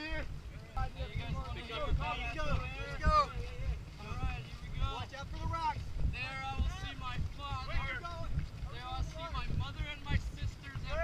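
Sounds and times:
men talking and calling out: 0:00.0 - 0:11.0
wind rumbling on microphone: 0:00.0 - 0:11.0.

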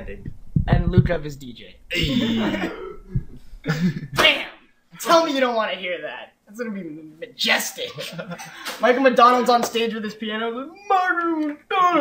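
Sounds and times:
men laughing: 0:01.9 - 0:04.2, 0:07.8 - 0:08.8.

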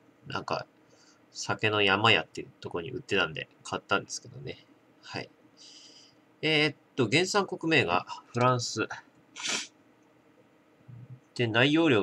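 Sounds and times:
sharp sniff through nose: 0:09.4 - 0:09.7.

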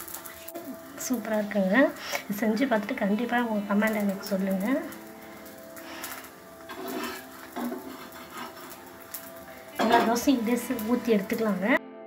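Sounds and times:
faint sizzle on hot pan: 0:00.0 - 0:11.8.

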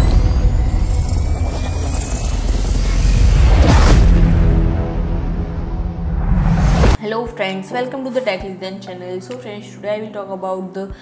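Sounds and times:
high tone gliding upward: 0:00.0 - 0:06.9
deep low rumble: 0:00.0 - 0:07.0.

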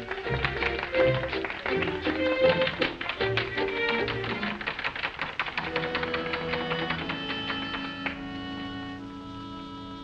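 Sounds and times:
orchestral music: 0:00.0 - 0:04.8, 0:05.6 - 0:10.0.

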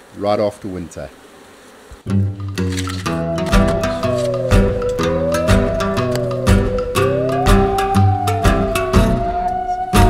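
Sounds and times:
bees buzzing: 0:01.7 - 0:10.0
background music with held notes: 0:02.1 - 0:10.0.

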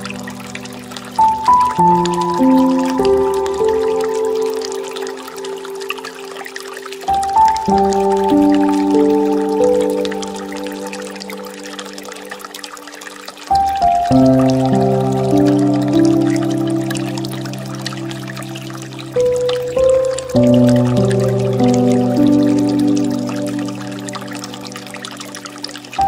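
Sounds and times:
gentle piano music: 0:00.0 - 0:26.0
water trickling from fountain: 0:00.0 - 0:26.0.

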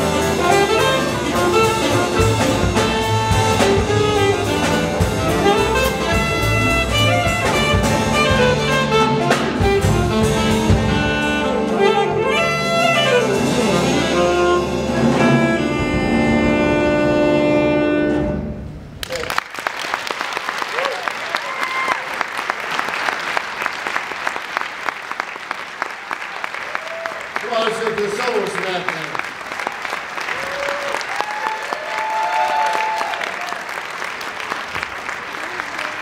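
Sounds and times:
big band final chord: 0:00.0 - 0:18.8
audience applauding: 0:19.0 - 0:36.0
shouts and whoops: 0:20.7 - 0:22.2, 0:26.6 - 0:27.2, 0:30.3 - 0:33.7.

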